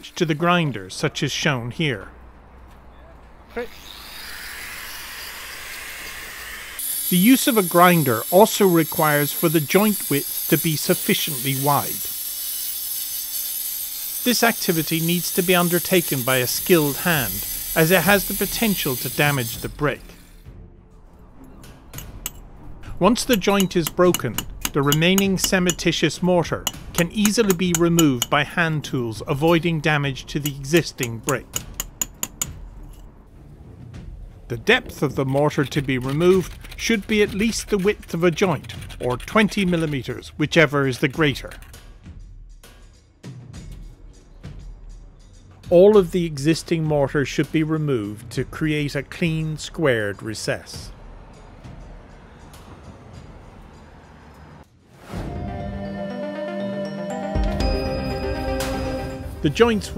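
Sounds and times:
angle grinder cutting brick mortar: 3.6s - 20.2s, 23.2s - 32.5s, 34.7s - 40.4s
hammer tapping steel chisel: 23.2s - 26.0s, 26.6s - 28.5s, 30.4s - 33.0s.

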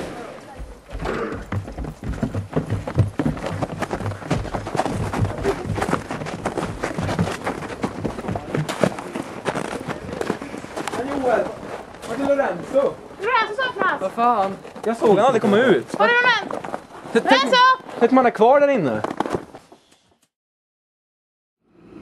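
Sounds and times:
hurried footsteps on wooden steps: 0.5s - 18.1s.

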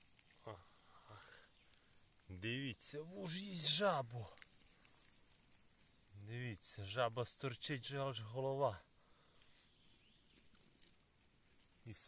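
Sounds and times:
faint ticks: 0.0s - 2.6s, 9.1s - 12.0s.

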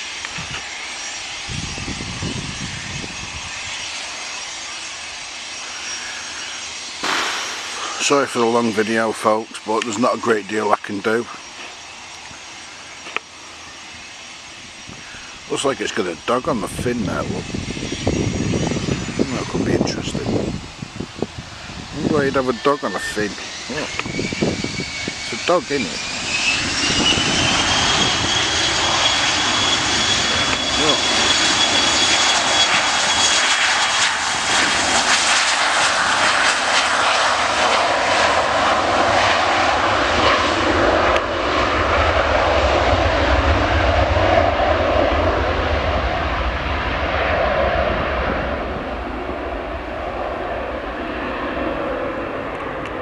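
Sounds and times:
jet engines rushing hiss: 0.0s - 53.0s.

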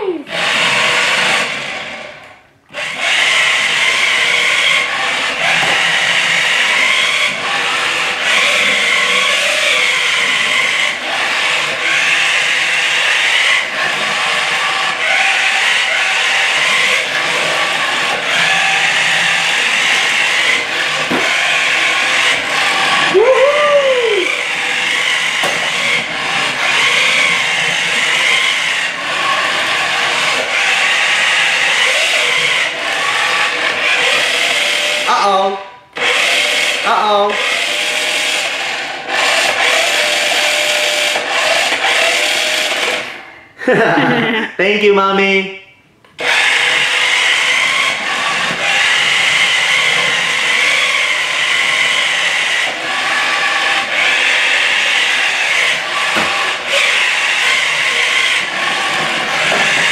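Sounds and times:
rising and falling squeal: 0.0s - 34.9s
toy car motor whining: 0.0s - 44.4s, 46.0s - 59.9s.

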